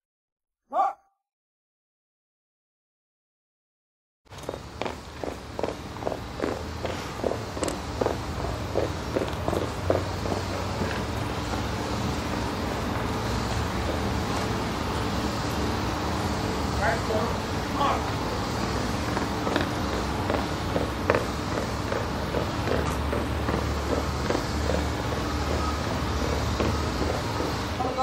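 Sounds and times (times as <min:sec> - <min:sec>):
boots marching on cobblestones: 0:04.3 - 0:15.6, 0:17.8 - 0:28.0.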